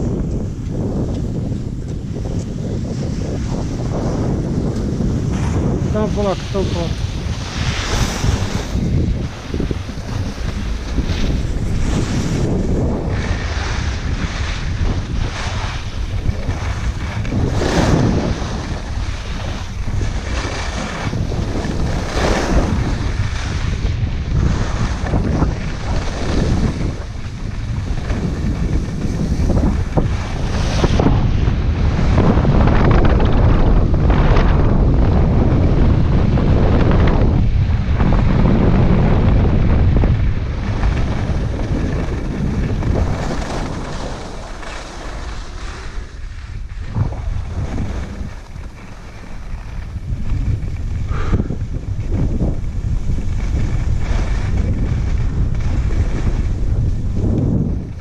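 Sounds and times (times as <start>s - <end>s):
skis scraping on snow: 0.0s - 37.0s, 39.8s - 58.0s
wind buffeting microphone: 0.0s - 58.0s.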